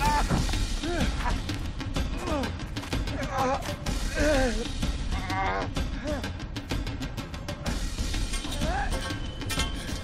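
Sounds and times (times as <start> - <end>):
dramatic film score music: 0.0 - 10.0.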